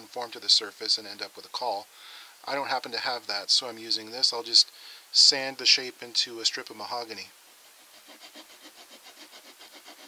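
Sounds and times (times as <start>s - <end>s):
wood rubbing on sandpaper: 7.5s - 10.0s.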